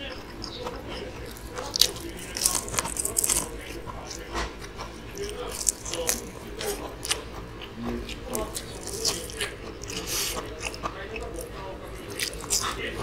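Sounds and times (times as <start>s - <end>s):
crunching and chewing fried chicken: 0.0s - 13.0s.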